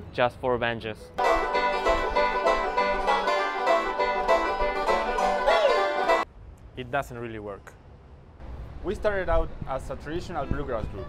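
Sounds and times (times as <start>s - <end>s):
banjos playing bluegrass: 1.2s - 6.2s.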